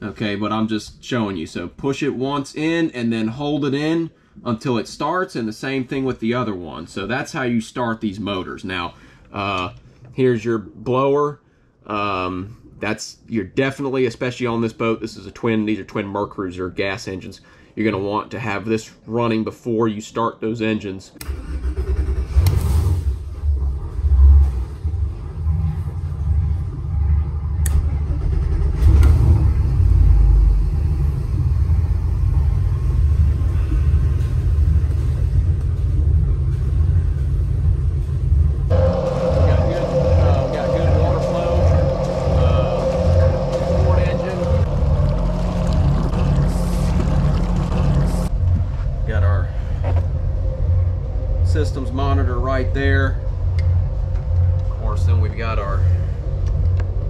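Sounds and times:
boat engines starting: 0:21.2 - 0:48.3
engines idling with deep rumble: 0:21.3 - 0:56.9
steady higher hum: 0:23.4 - 0:57.0.

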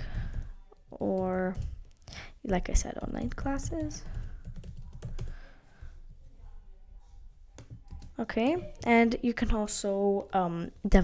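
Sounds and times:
typing on computer keyboard: 0:00.1 - 0:02.0, 0:03.0 - 0:05.4, 0:07.6 - 0:08.2.

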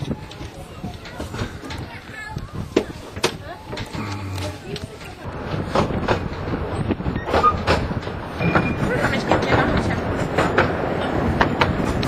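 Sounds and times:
train wheels rumbling: 0:00.0 - 0:12.0
wheels clicking over rail joints: 0:00.0 - 0:12.0.

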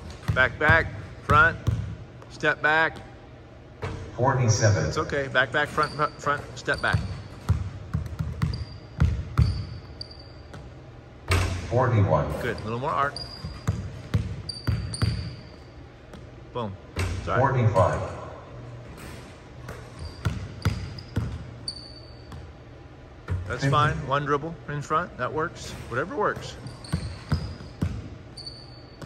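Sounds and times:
basketball dribbling on hardwood: 0:00.0 - 0:02.3, 0:06.5 - 0:09.8, 0:13.4 - 0:15.4, 0:26.4 - 0:28.1
sneakers squeaking: 0:00.0 - 0:04.2, 0:04.9 - 0:24.0, 0:25.5 - 0:29.0.

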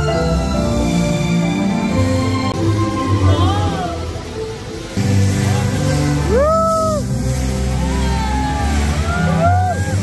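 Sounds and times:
music with bass and gliding tones: 0:00.0 - 0:10.0.

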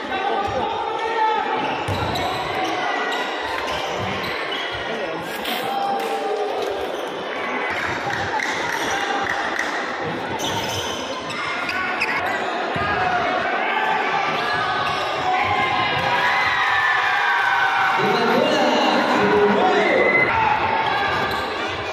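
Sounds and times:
voices echoing in a hall: 0:00.0 - 0:21.9.

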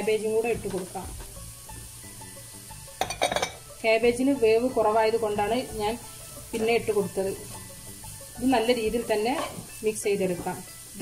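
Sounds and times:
vegetables sizzling in a wok: 0:00.0 - 0:11.0.

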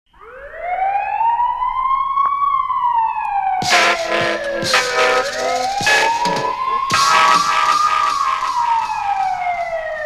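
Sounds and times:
siren wail: 0:00.1 - 0:10.0
hip-hop beat: 0:03.6 - 0:10.0.

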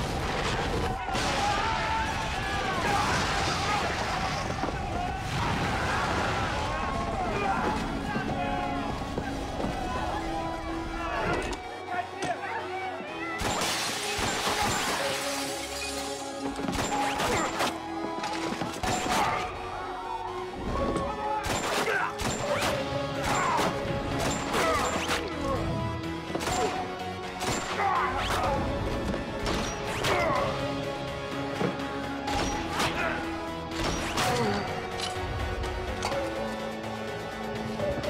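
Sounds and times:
debris shattering and crashing: 0:00.0 - 0:07.9, 0:13.4 - 0:17.6
tense music score: 0:00.0 - 0:38.0.

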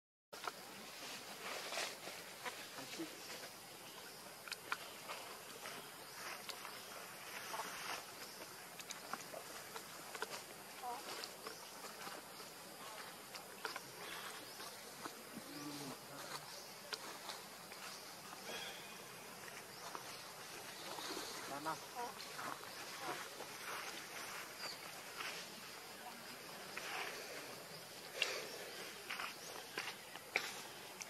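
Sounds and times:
forest insects buzzing: 0:00.4 - 0:31.0.

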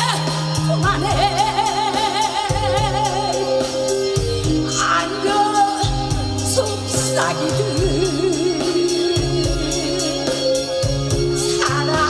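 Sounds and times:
backing track with beat: 0:00.0 - 0:12.0
woman singing a ballad: 0:00.0 - 0:12.0.

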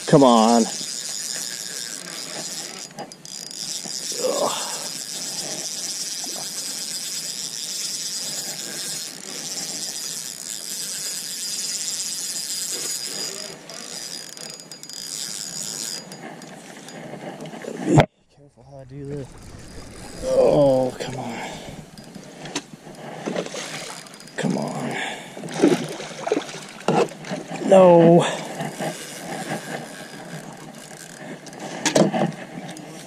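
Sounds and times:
fishing reel whirring: 0:00.0 - 0:17.8, 0:18.7 - 0:33.0.

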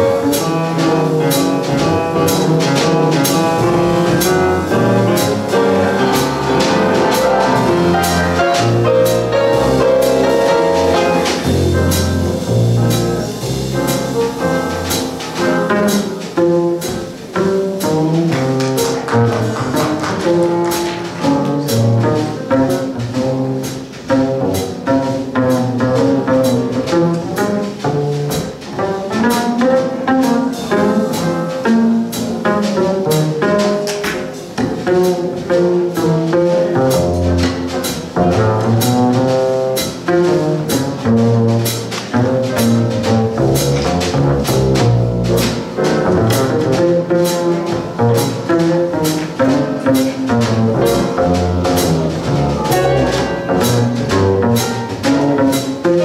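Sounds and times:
piano: 0:00.0 - 0:56.0
upright string bass: 0:00.0 - 0:56.0.

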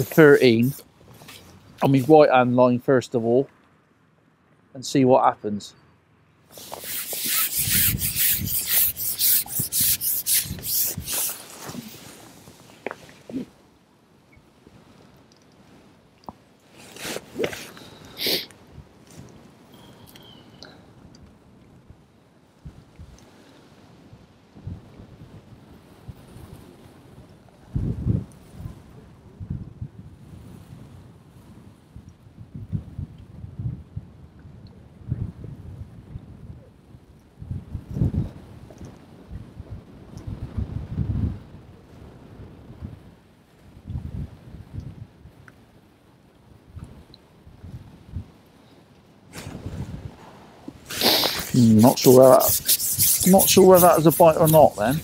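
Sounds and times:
wind buffeting microphone: 0:24.6 - 0:45.4, 0:49.3 - 0:51.6.

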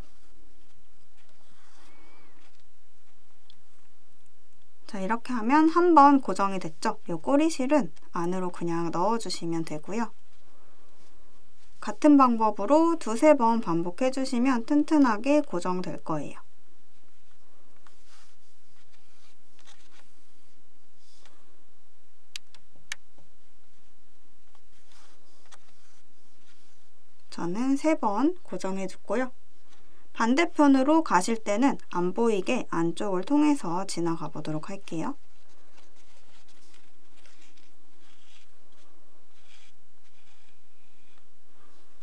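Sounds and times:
needle and thread through fabric: 0:00.0 - 0:21.4, 0:22.6 - 0:42.0
needle and thread scratching: 0:33.1 - 0:41.7.

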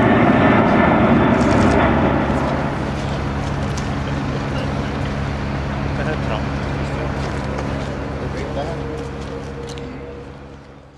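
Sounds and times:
low engine drone: 0:00.0 - 0:10.9.

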